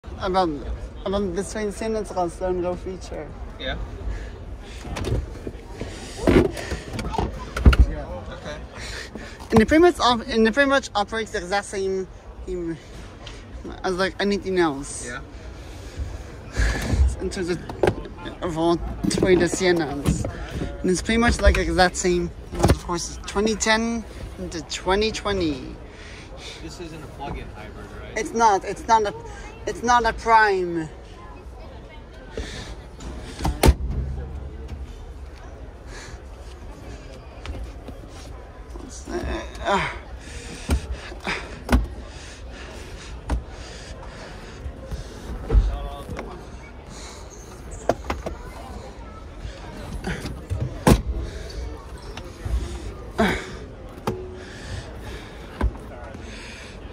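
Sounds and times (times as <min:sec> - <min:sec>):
seat mechanism clunks: 0:33.4 - 0:34.8.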